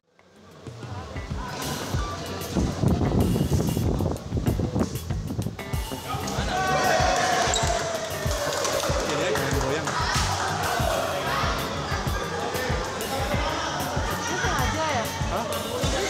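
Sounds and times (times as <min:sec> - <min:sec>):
background music: 0:00.0 - 0:16.0
voices: 0:00.2 - 0:05.0, 0:05.6 - 0:16.0.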